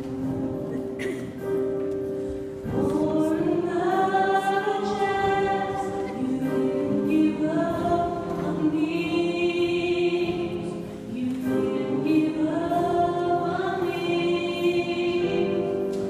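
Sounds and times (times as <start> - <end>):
gospel choir singing: 2.7 - 16.0.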